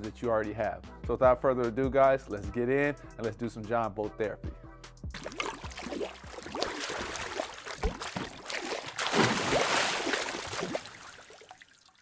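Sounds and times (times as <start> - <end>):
water splashing: 5.2 - 12.0.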